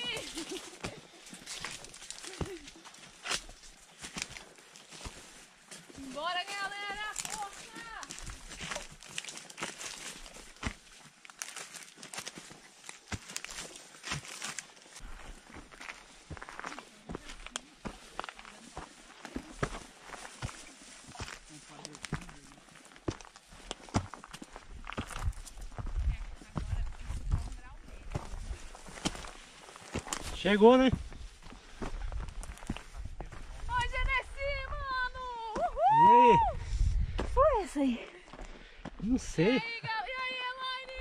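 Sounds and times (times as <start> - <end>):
twigs and leaves crunching: 0.0 - 35.9
footsteps on dirt trail: 0.0 - 41.0.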